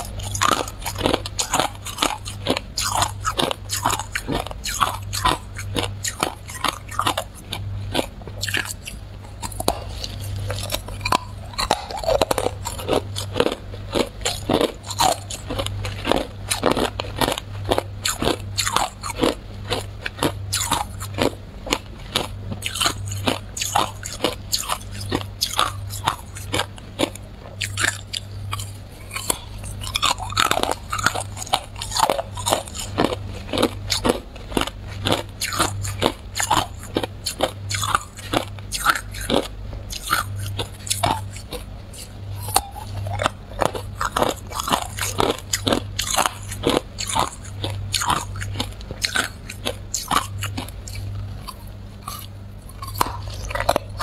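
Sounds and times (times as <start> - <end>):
ice being chewed: 0.0 - 54.0.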